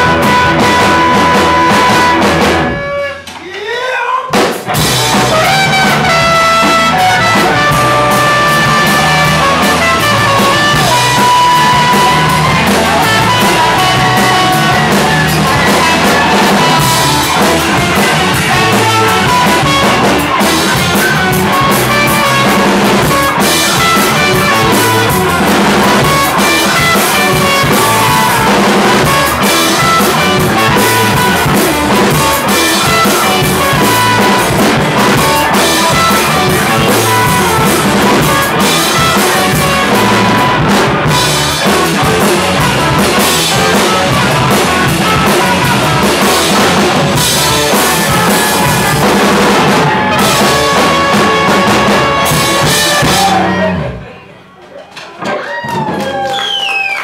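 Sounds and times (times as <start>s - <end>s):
trumpet: 0.0s - 3.3s, 5.0s - 54.0s
electric guitar: 0.0s - 3.4s, 4.4s - 54.3s
bass guitar: 0.0s - 3.5s, 4.3s - 54.5s
drum kit beat: 0.0s - 54.0s.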